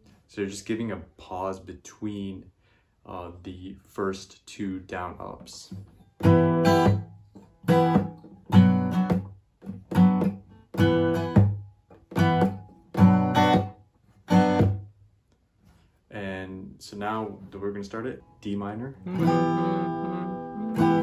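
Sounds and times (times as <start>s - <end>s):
acoustic guitar strumming: 5.7s - 14.9s, 19.0s - 21.0s.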